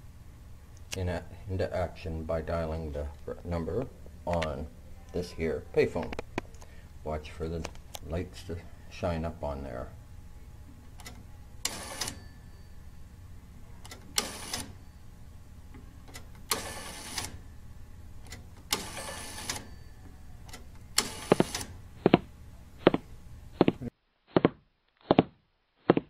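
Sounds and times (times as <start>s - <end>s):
steady low hum: 0.0s - 24.0s
telephone exchange switches clattering: 18.3s - 19.7s.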